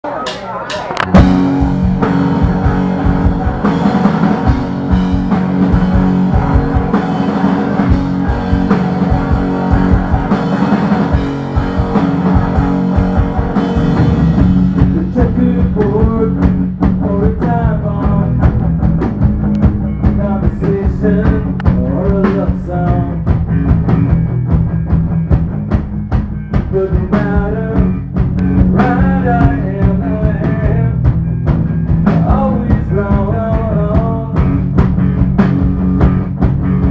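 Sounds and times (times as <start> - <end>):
rock band playing: 0.0 - 36.9.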